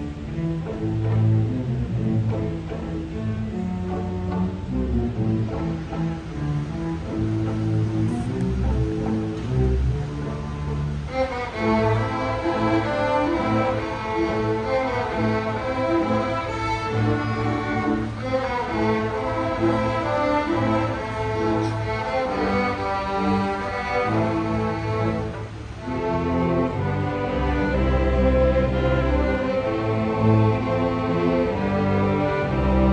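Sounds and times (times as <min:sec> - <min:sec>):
string orchestra playing: 0:00.0 - 0:32.9.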